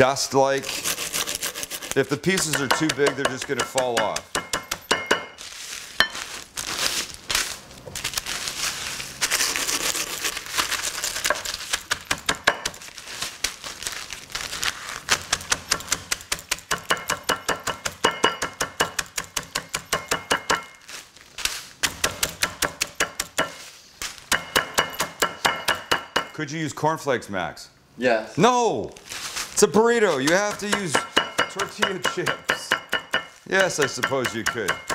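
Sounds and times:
bottle pounding on cutting board: 2.3s - 5.4s, 30.4s - 34.9s
plastic bag crinkling: 5.4s - 12.1s, 12.7s - 16.1s, 20.7s - 21.8s, 28.9s - 30.5s
chips crunching: 5.4s - 16.3s.

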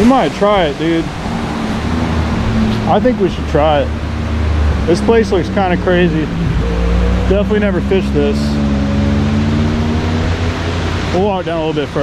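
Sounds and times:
water rushing over spillway: 0.0s - 12.0s.

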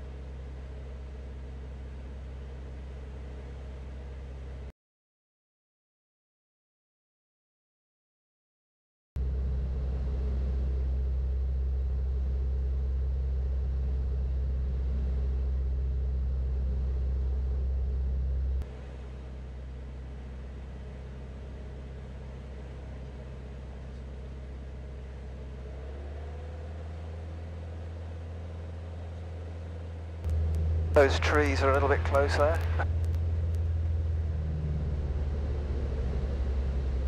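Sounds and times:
aircraft piston engine droning: 9.2s - 37.0s.

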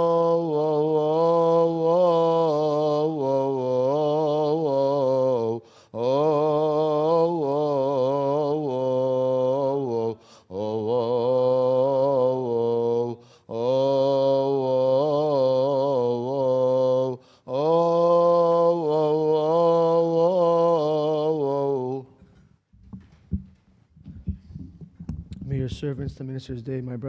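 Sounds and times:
man chanting a hymn: 0.0s - 22.0s.

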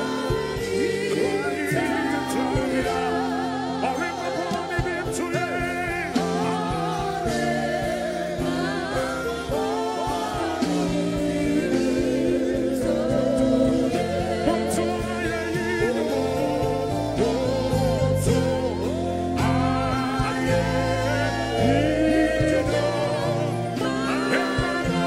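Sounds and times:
band playing: 0.0s - 25.0s
voices singing with vibrato: 0.0s - 25.0s.

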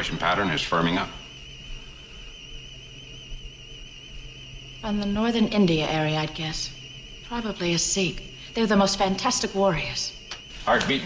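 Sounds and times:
low hum: 0.0s - 11.0s
warbling high electronic tone: 0.0s - 11.0s.

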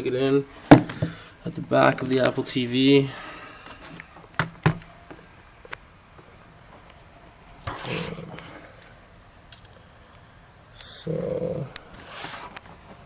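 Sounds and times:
short rustling: 11.9s - 13.0s.

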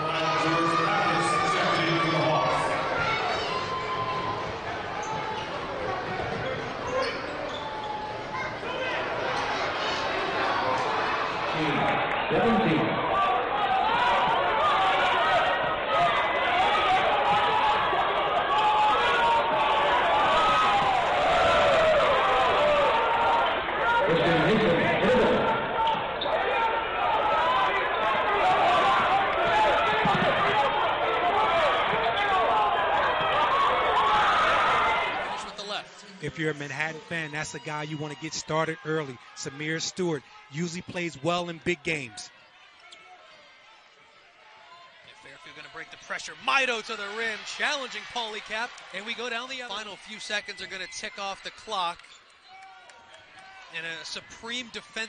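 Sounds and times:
hubbub of voices: 0.0s - 55.0s.

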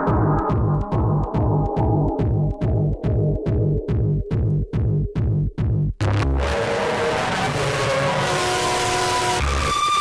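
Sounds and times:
low bass hit: 0.0s - 6.0s.

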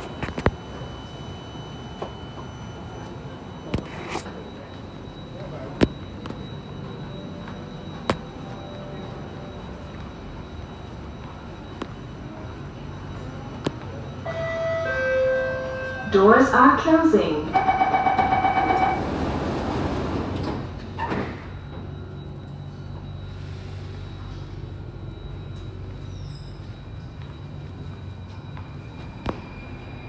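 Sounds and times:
faint high whine: 0.0s - 19.0s, 20.4s - 30.0s
door warning chime: 0.0s - 30.0s
train low hum: 0.0s - 30.0s.

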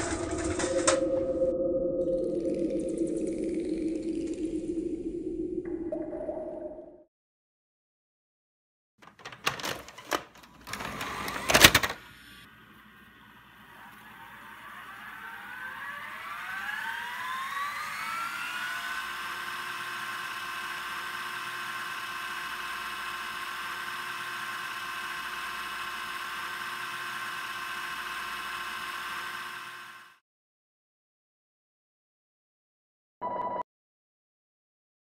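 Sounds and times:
gliding drone of steady tones: 0.3s - 7.0s.

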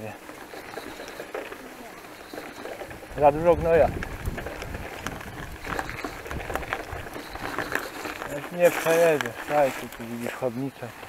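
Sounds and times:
bike rattles and knocks: 0.0s - 11.0s.

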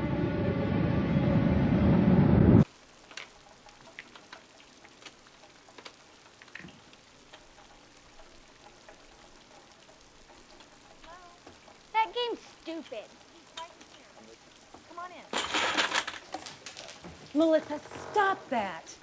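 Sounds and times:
orchestral music sting: 0.0s - 2.6s
soft ticks and clicks: 2.6s - 15.3s
faint steady rain: 2.6s - 19.0s.

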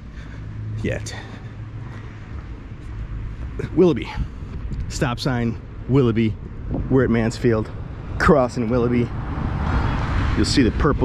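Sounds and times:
city traffic hum: 0.0s - 11.0s.

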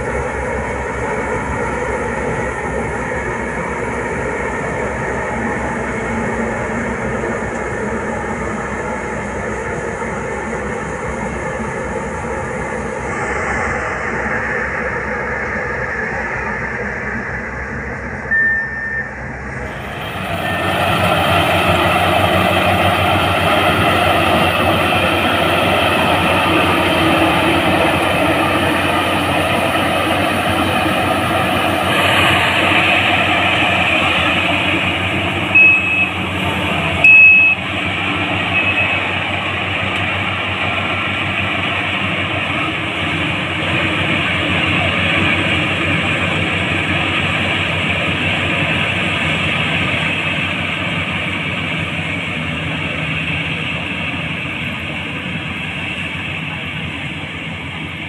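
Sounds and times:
combine harvester running: 0.0s - 58.0s
short high-pitched beeps: 18.3s - 19.6s, 35.6s - 36.2s, 37.0s - 37.6s, 38.6s - 39.1s.

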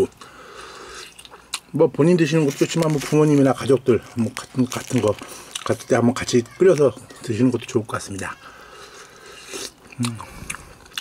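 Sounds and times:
person chewing: 0.1s - 1.8s, 2.4s - 6.1s, 7.6s - 11.0s.

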